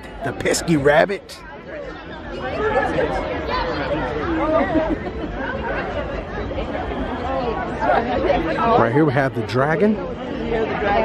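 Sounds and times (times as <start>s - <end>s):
people chatting: 0.0s - 1.4s.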